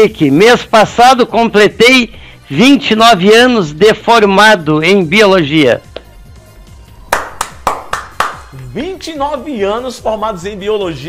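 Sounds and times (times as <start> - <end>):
faint background music: 0.0 - 11.0
man clapping hands: 7.1 - 8.7.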